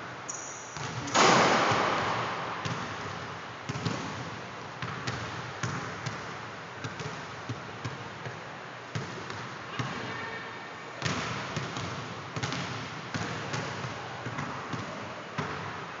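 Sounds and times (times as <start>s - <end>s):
basketballs bouncing on wooden floor: 0.8s - 10.0s, 11.0s - 15.7s.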